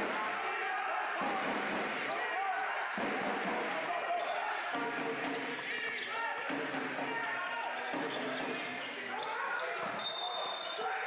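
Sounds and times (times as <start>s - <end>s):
echoing indistinct voices: 0.0s - 11.0s.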